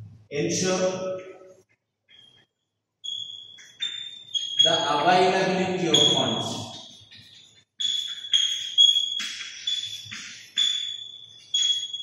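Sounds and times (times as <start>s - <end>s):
high-pitched chalk squeal: 3.0s - 12.0s
chalk scraping on chalkboard: 8.0s - 10.7s.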